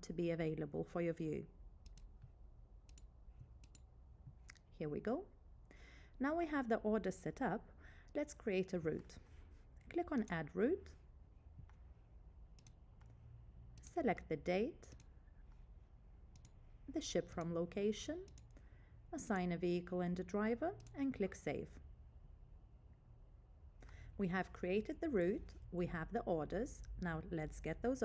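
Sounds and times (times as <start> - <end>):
low background hum: 0.0 - 28.0
computer mouse clicks: 1.8 - 4.6, 9.8 - 10.4, 12.5 - 13.2, 14.8 - 15.2, 16.3 - 16.6, 18.2 - 18.6
person speaking: 6.2 - 11.1.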